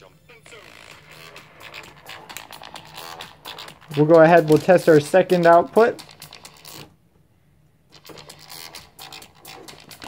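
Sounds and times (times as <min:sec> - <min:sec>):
dance music leaking from headphones: 0:00.0 - 0:06.9, 0:08.0 - 0:10.0.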